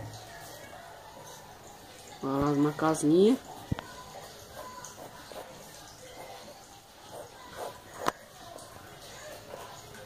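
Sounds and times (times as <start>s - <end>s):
pencil scratching on paper: 3.8s - 8.4s, 9.0s - 10.0s.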